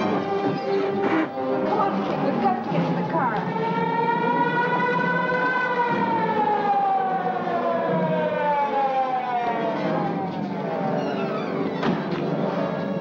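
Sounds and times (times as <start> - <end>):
police siren wailing: 0.0 - 13.0.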